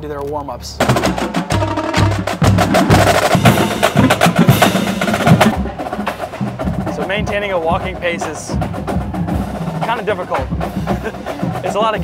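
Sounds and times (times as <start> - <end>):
bass drum hits: 0.8 - 5.8
snare drum strokes and rolls: 0.8 - 12.0.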